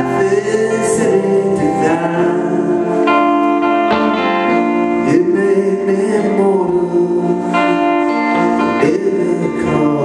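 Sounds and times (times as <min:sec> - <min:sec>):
electric guitar playing: 0:00.0 - 0:10.0.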